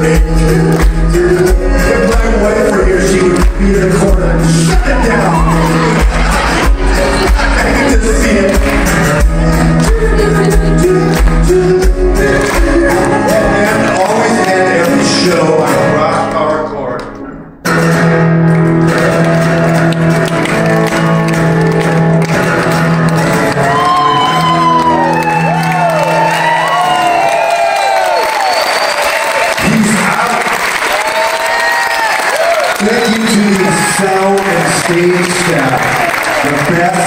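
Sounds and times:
people clapping: 0:00.0 - 0:15.5, 0:17.9 - 0:37.0
man singing: 0:00.0 - 0:16.8
acoustic guitar: 0:00.0 - 0:29.0
people whooping and cheering: 0:04.5 - 0:07.9, 0:12.4 - 0:14.9, 0:23.3 - 0:37.0.

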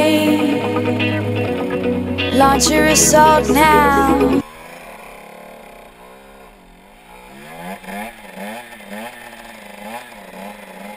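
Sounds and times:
motorcycle engine revving: 0:00.0 - 0:10.9.

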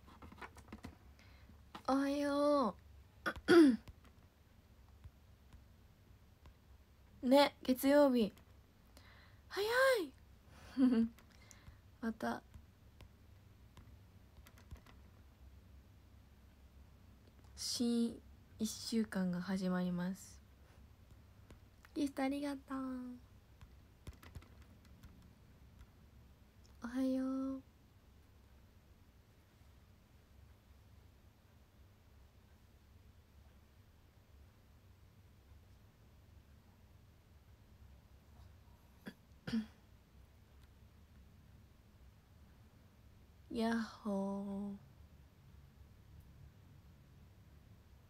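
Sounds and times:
low room hum: 0:00.0 - 0:48.0
person speaking: 0:01.6 - 0:04.2, 0:06.4 - 0:08.5, 0:09.5 - 0:15.1, 0:17.5 - 0:24.8.

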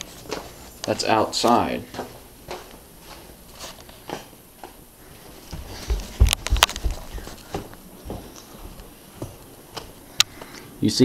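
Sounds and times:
footsteps on indoor floor: 0:00.0 - 0:00.9, 0:01.5 - 0:10.0
camera handling rumble: 0:06.2 - 0:07.4.

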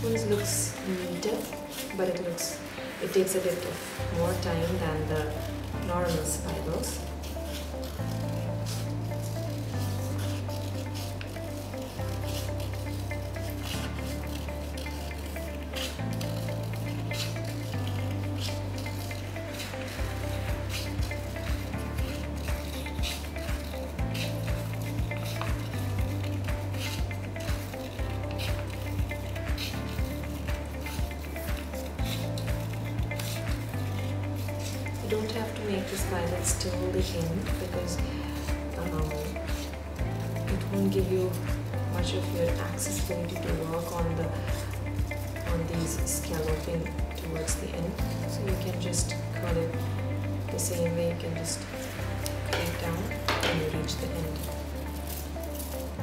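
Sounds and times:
background music with slow bass: 0:00.0 - 0:56.0
scissors cutting paper: 0:00.0 - 0:56.0.

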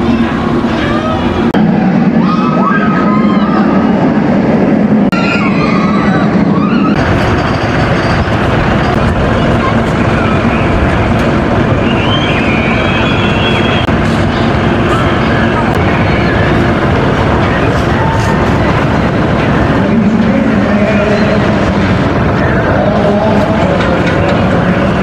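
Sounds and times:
people's voices: 0:00.0 - 0:04.5, 0:08.6 - 0:25.0
roller coaster rumble and clatter: 0:00.0 - 0:25.0.

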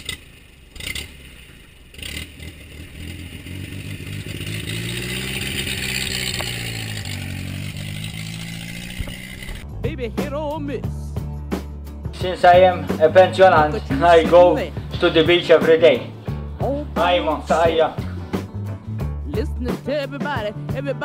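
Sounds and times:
engine clunks: 0:00.0 - 0:09.8
car engine starting and revving: 0:00.0 - 0:10.2, 0:12.1 - 0:19.2.

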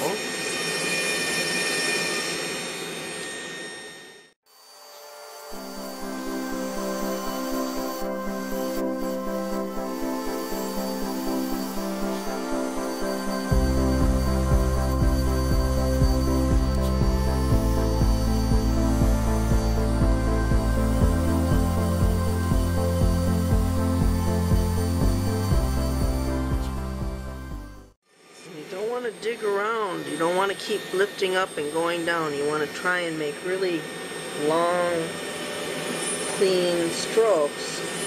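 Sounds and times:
power carving tool whining: 0:00.0 - 0:38.0
background music with steady beat: 0:05.6 - 0:28.0
bass line: 0:13.5 - 0:28.0.

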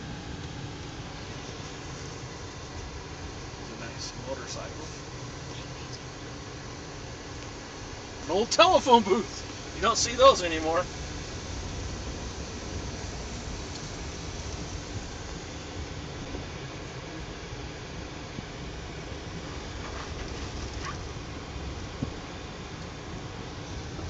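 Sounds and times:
car cabin rumble: 0:00.0 - 0:24.0.

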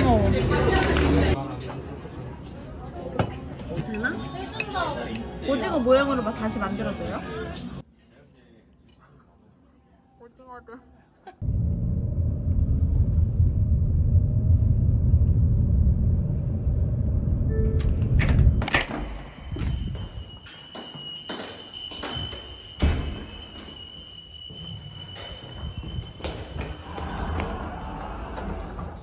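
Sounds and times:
low vehicle rumble: 0:11.4 - 0:18.7.

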